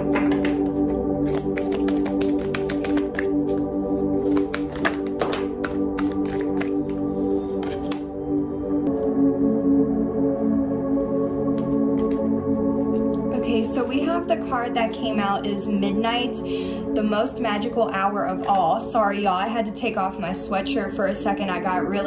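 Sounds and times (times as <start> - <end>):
soft ambient music: 0.0 - 22.0
cards being shuffled by hand: 0.1 - 8.1, 11.5 - 12.3.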